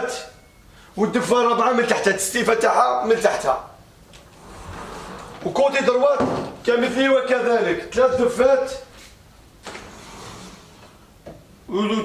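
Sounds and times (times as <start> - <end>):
sliding door rolling: 4.1 - 6.6, 9.6 - 11.0.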